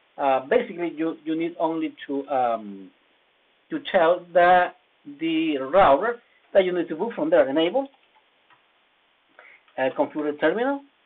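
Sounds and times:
computer keyboard keystrokes: 7.8s - 8.2s.

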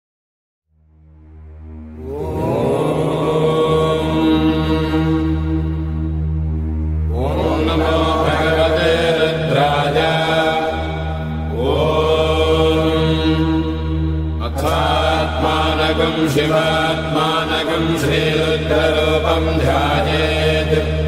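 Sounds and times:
steady low drone: 0.7s - 21.0s
mantra chanting: 2.0s - 21.0s.

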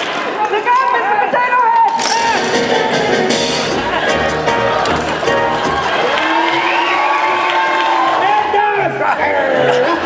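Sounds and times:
audience cheering and whooping: 2.0s - 10.0s.

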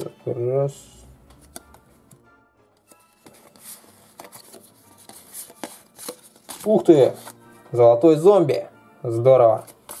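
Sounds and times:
quiet background music: 0.0s - 10.0s
playing cards clicking and rustling: 1.3s - 2.2s, 2.8s - 7.4s, 9.5s - 10.0s.

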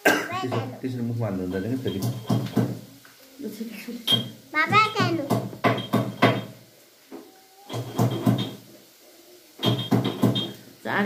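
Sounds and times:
person coughing: 0.0s - 0.4s.

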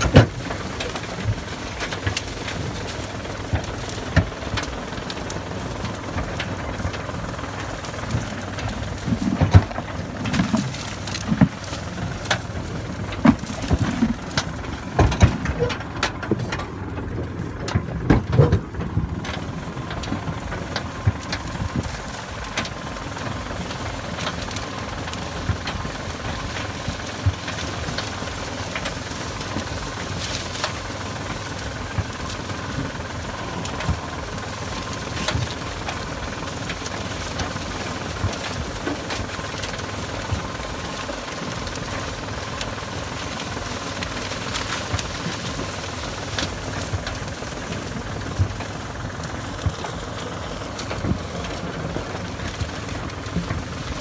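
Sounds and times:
tractor engine running: 0.0s - 54.0s
knocks and rattles: 8.0s - 22.7s.

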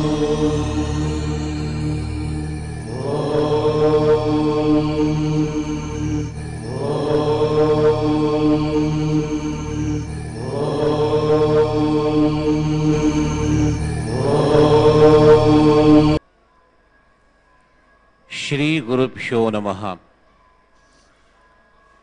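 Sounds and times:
steady low drone: 0.0s - 16.2s
sustained chant: 0.0s - 16.2s.

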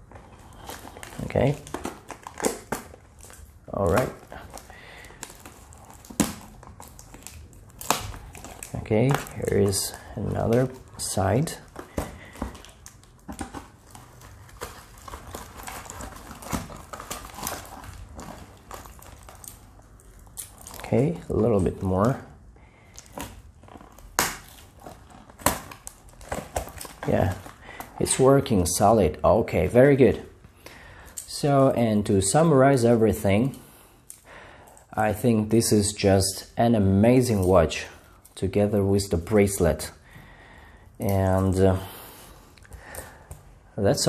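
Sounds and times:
rustling: 0.0s - 22.2s
sharp plastic crackles: 0.0s - 28.9s
plastic wrapping crinkling and tearing: 0.0s - 40.0s.

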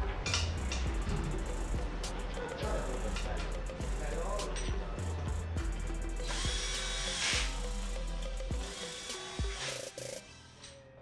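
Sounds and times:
background music: 0.0s - 11.0s
cordless drill motor whine: 6.2s - 7.8s, 8.6s - 10.5s.

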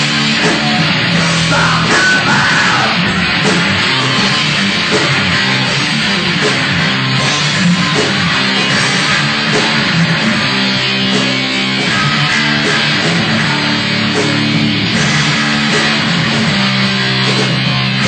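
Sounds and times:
distorted electric guitar: 0.0s - 18.0s
heavy metal band playing live: 0.0s - 18.0s.

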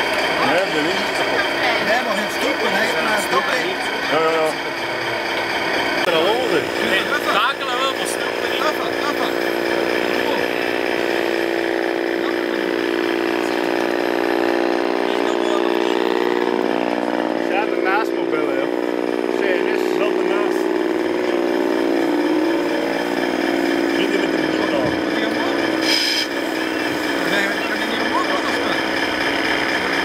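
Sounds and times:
people talking: 0.0s - 5.4s, 6.0s - 14.1s, 14.9s - 30.0s
model truck motor droning: 0.0s - 30.0s.

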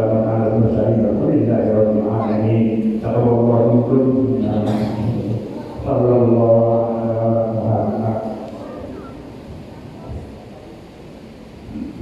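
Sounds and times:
man chanting a prayer: 0.0s - 8.8s.

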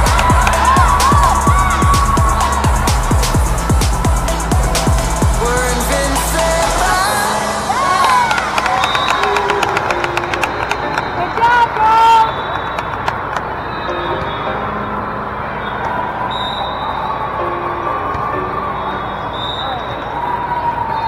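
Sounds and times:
many voices calling: 0.0s - 21.0s
sneaker squeaks on court floor: 12.3s - 17.1s.

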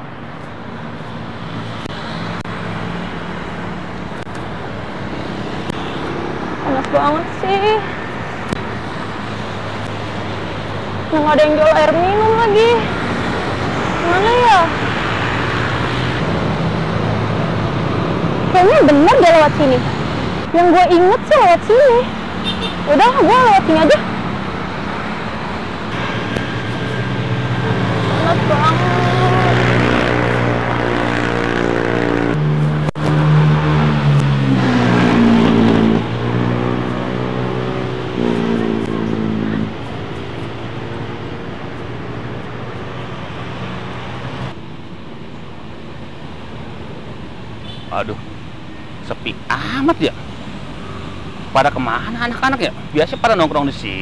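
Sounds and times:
vehicles passing on street: 0.0s - 54.0s.

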